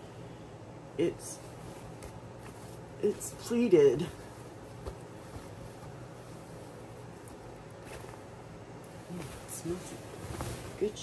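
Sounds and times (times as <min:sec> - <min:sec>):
steady low hum: 0:00.0 - 0:11.0
bedsheet rustle: 0:01.1 - 0:11.0.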